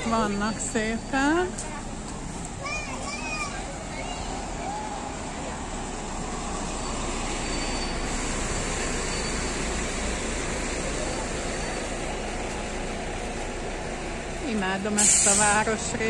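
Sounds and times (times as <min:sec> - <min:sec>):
street traffic rumble: 0:00.0 - 0:16.0.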